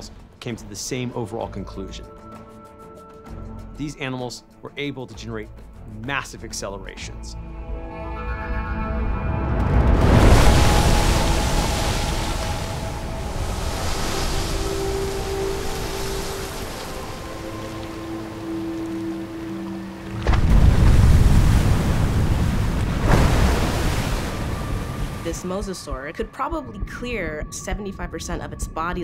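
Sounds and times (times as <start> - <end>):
sustained music: 0.0 - 29.0
heavy crash of water: 9.6 - 25.4
wash of waves: 9.8 - 25.6
rushing water and spray: 9.9 - 25.5.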